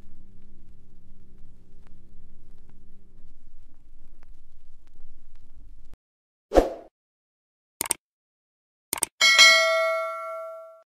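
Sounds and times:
notification bell ding: 9.2s - 10.8s.

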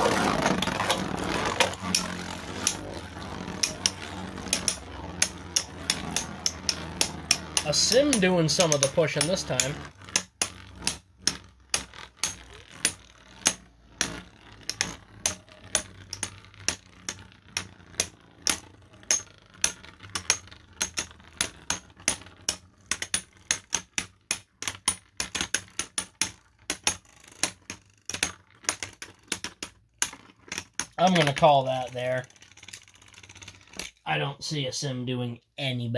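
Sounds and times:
spinning tops clicking together: 0.0s - 34.0s.

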